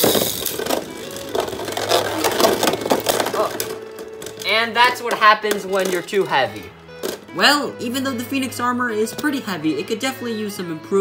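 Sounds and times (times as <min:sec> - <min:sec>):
spinning tops clashing and rattling: 0:00.0 - 0:07.3
background music: 0:00.0 - 0:11.0.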